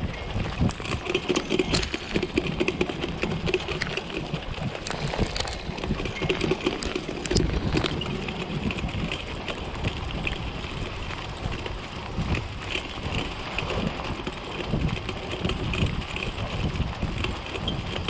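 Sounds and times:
cart wheels rolling on dirt: 0.0s - 18.0s.

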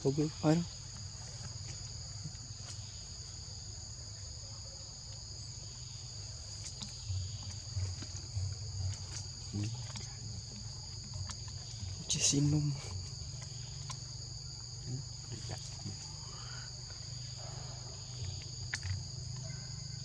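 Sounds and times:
insects droning: 0.0s - 20.0s
soft low thumps: 6.8s - 12.2s.

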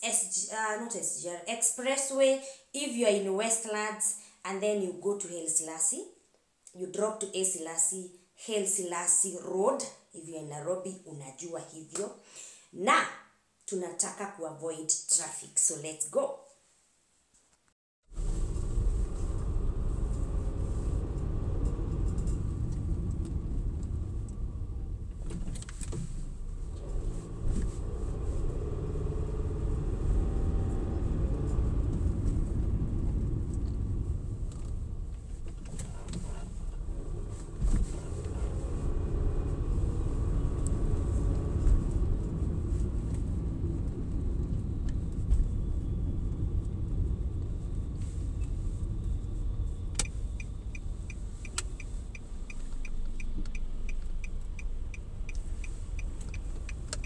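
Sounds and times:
car engine and road noise: 18.0s - 57.0s.

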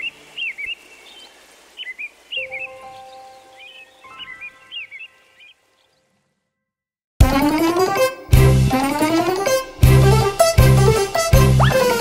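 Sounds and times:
birds chirping: 0.0s - 6.5s
soft held chord: 2.4s - 4.6s.

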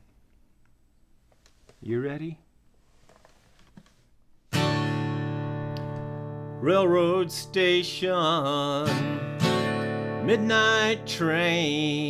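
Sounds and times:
acoustic guitar strum ringing: 4.5s - 11.8s.

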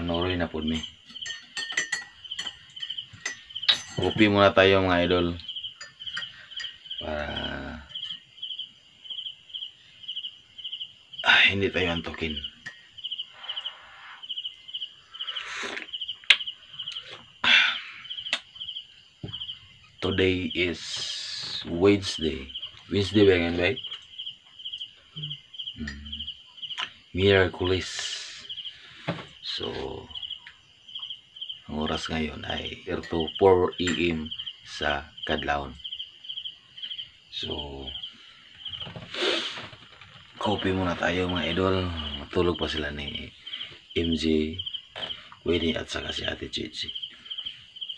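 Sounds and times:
cricket chirping: 0.0s - 47.9s
spoon clinking ceramic mug: 0.8s - 4.2s, 5.8s - 6.8s.

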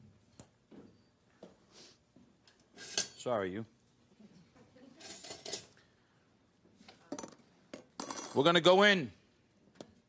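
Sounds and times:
kitchen utensils scraping and rattling: 2.7s - 3.3s, 4.9s - 5.8s.

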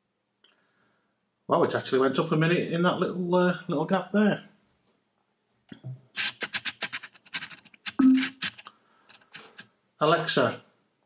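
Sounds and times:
hand clicking and scratching speaker: 5.7s - 9.7s
brief low tone: 8.0s - 8.4s.

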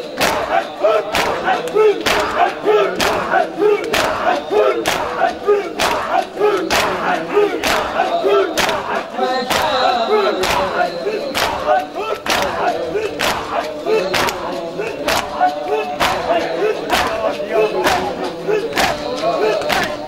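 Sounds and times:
hands slapping chests: 0.0s - 20.0s
men chanting in unison: 0.0s - 20.0s.

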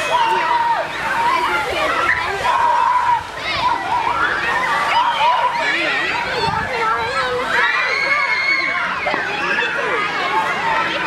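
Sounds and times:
children shouting and shrieking: 0.0s - 11.0s.

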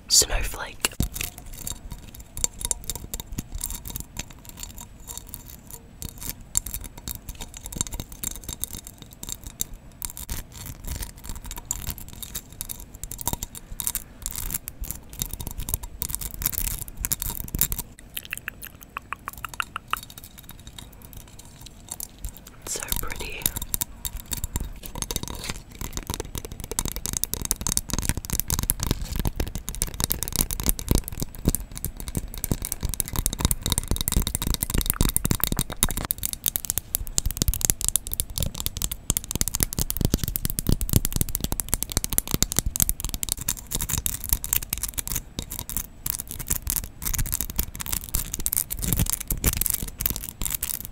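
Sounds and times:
fingernails scratching and tapping: 1.0s - 50.8s.

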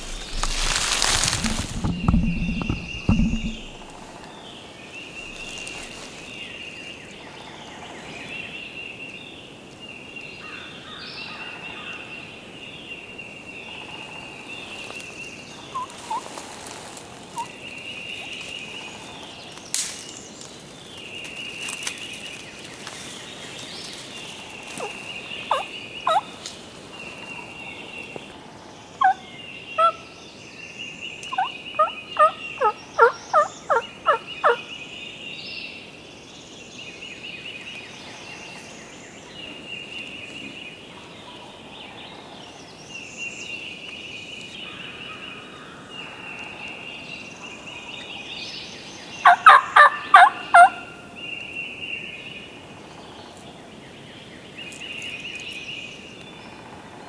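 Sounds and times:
turkey calling: 24.8s - 26.3s, 31.3s - 34.6s, 49.2s - 50.9s.

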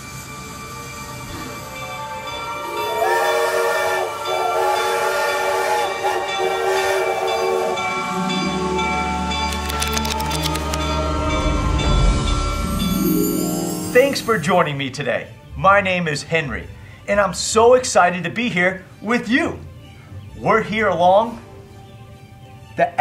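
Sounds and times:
steam locomotive whistle: 0.0s - 9.2s.

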